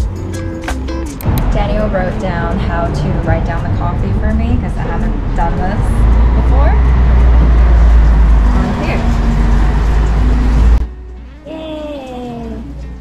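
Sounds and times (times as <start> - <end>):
loud low rumble: 1.2 - 10.9
woman talking: 1.4 - 6.8, 8.6 - 9.1, 11.4 - 12.7.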